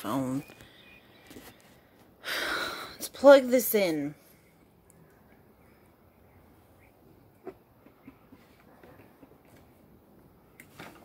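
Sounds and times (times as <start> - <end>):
person sighing: 2.2 - 3.0.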